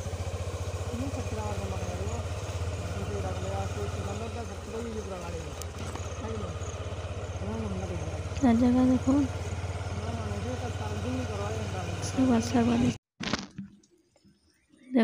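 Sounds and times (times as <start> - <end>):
motorcycle engine cruising: 0.0 - 13.0.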